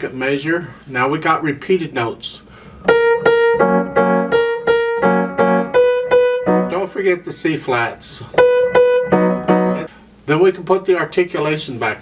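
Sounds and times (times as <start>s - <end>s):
grand piano played slowly: 2.8s - 6.9s, 8.3s - 9.9s.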